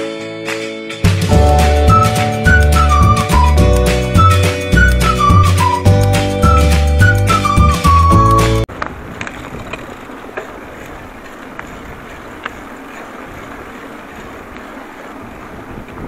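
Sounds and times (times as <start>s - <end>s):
music: 0.0s - 8.7s
bicycle tyre and wind noise: 7.4s - 16.0s.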